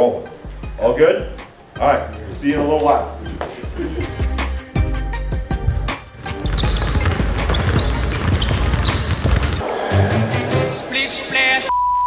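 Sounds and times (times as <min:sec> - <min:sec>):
background music with a beat: 0:00.1 - 0:12.0
basketballs bouncing on hardwood: 0:06.2 - 0:09.6.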